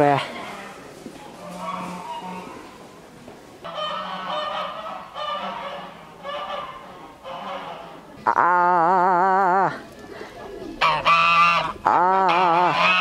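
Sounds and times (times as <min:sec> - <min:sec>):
geese honking: 0:00.4 - 0:02.8, 0:03.6 - 0:08.6, 0:10.7 - 0:13.0.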